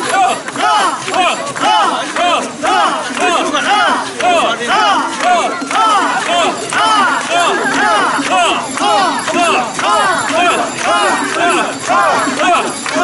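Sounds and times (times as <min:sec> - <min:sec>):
crowd chanting in unison: 0:00.0 - 0:13.0.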